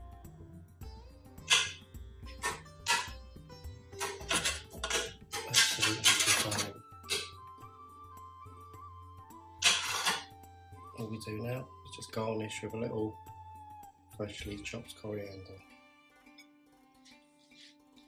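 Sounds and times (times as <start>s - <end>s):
background music: 0.0s - 18.0s.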